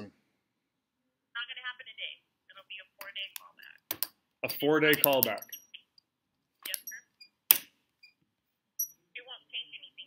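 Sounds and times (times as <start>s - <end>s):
woman talking over phone: 1.4s - 3.9s, 6.7s - 7.1s, 9.1s - 10.0s.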